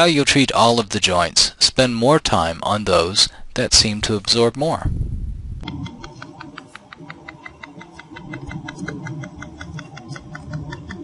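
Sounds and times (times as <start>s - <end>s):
low hum: 4.8s - 11.0s
machine clicking rapidly: 5.6s - 11.0s.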